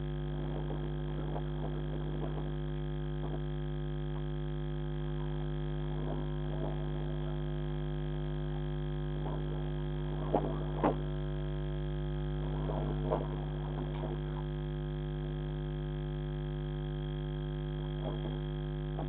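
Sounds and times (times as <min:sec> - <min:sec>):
faint irregular sounds: 0:00.0 - 0:15.8, 0:16.4 - 0:19.0
electrical hum: 0:00.0 - 0:19.0.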